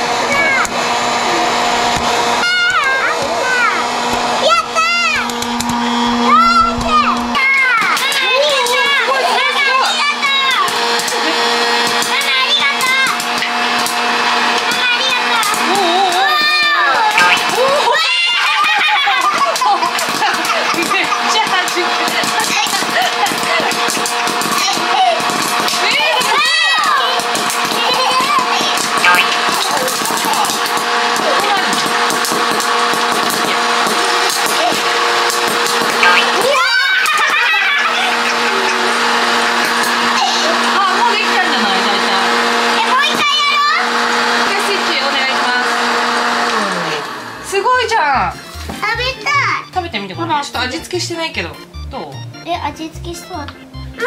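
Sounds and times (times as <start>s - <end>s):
popcorn maker fan humming: 0.0s - 54.0s
popcorn pops and clicks: 19.0s - 37.4s.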